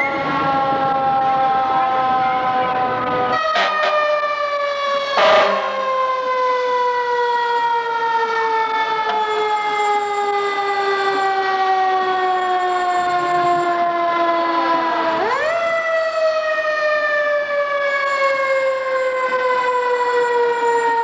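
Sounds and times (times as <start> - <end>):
fire truck siren winding: 0.0 - 21.0.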